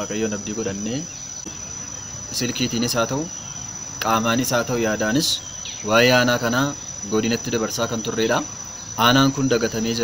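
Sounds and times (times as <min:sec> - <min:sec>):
crickets trilling: 0:00.0 - 0:10.0
man's voice: 0:04.0 - 0:10.0.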